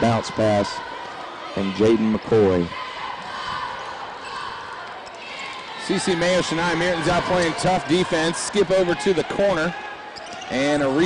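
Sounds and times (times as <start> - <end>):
arena crowd hum: 0.0 - 11.0.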